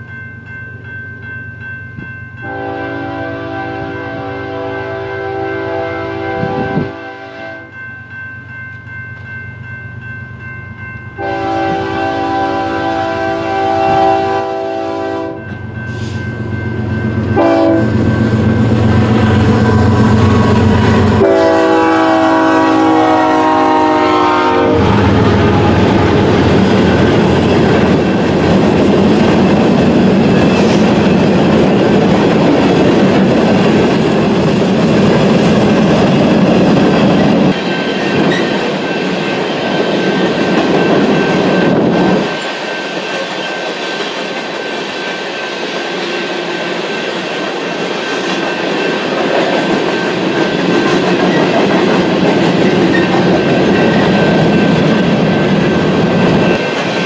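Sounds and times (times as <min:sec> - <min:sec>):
diesel locomotive horn blasts: 0:02.4 - 0:07.7, 0:11.2 - 0:16.2, 0:17.3 - 0:27.4
train rumbling past: 0:08.5 - 0:57.0.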